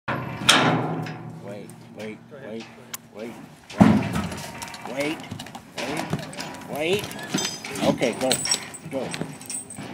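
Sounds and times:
loud metal bang ringing: 0.1s - 1.4s.

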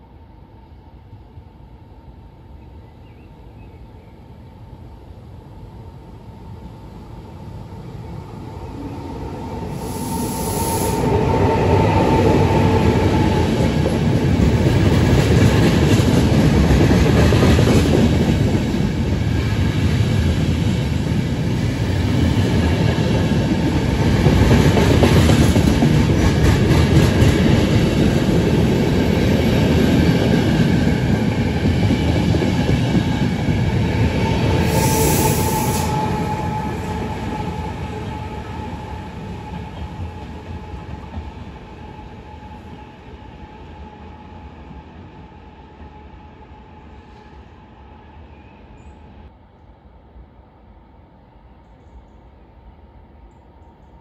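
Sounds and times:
train wheels rumbling on rails: 7.8s - 47.6s.

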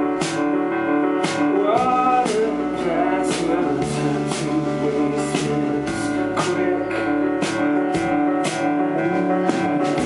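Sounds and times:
live band playing: 0.0s - 10.0s.

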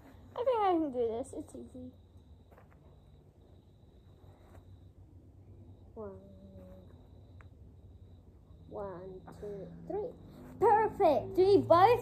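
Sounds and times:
faint high-pitched whine: 0.0s - 12.0s.

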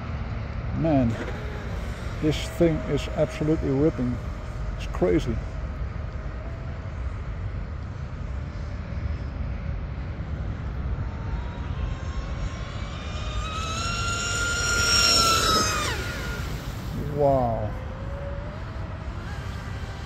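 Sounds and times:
model speedboat motor whine: 1.2s - 7.2s, 8.1s - 20.0s.

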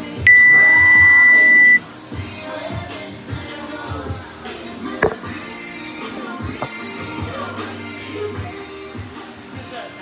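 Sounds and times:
timer beep high tone: 0.3s - 1.8s.

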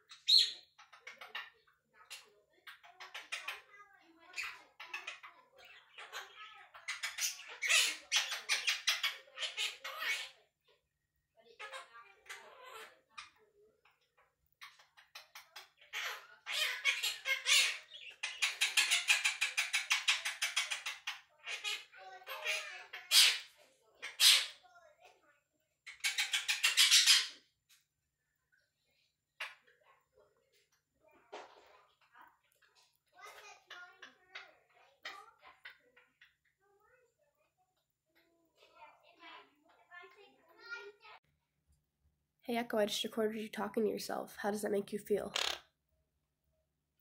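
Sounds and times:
parrot chattering: 0.0s - 10.5s, 11.5s - 25.1s, 25.8s - 27.5s, 32.0s - 37.0s, 45.2s - 45.7s.

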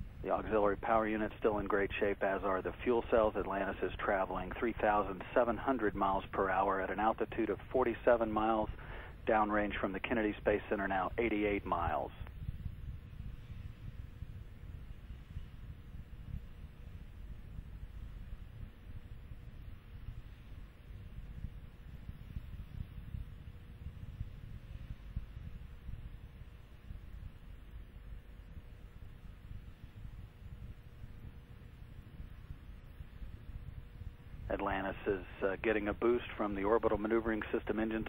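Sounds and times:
faint steady hum: 0.0s - 38.0s
low background rumble: 0.0s - 38.0s.

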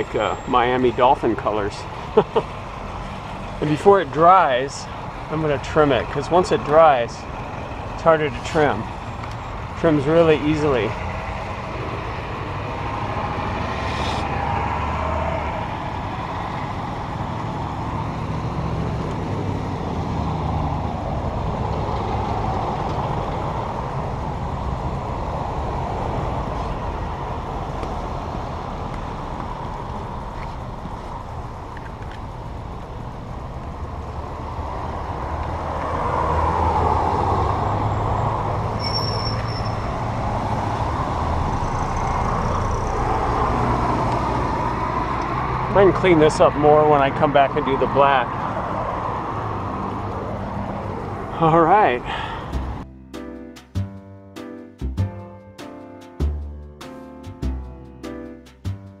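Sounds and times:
rumble of cars and trucks: 0.0s - 59.0s.

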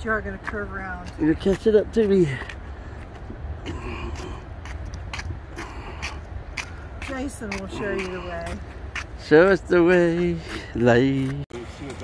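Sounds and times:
footsteps scuffing on paved path: 0.0s - 12.0s
steady low rumble: 0.0s - 12.0s.

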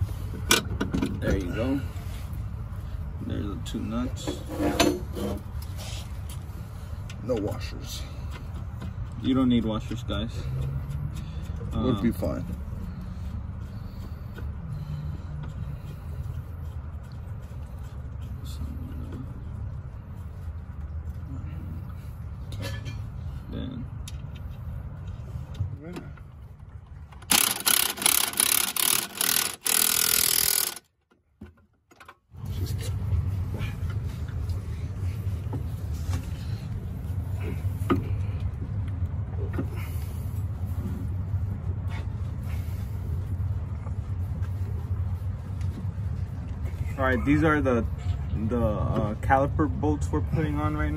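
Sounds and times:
steady low hum: 0.0s - 31.1s, 32.4s - 50.9s
impact wrench hammering: 27.2s - 30.9s.

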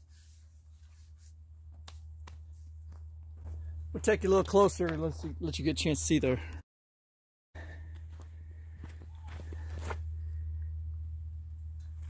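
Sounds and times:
low hum: 0.0s - 5.8s, 7.6s - 12.0s
footsteps: 0.7s - 5.4s, 7.9s - 10.1s.

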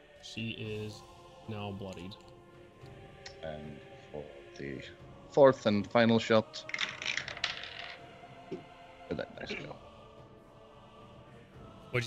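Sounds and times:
dice clattering: 6.7s - 8.0s.

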